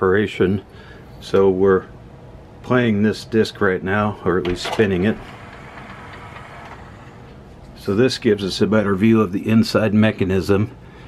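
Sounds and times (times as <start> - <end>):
cd tray motor whirring: 4.6 - 7.5.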